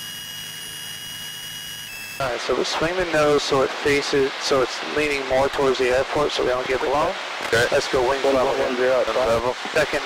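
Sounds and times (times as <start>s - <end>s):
thin high-pitched whine: 0.0s - 4.7s
airplane engine and propeller drone: 0.0s - 10.0s.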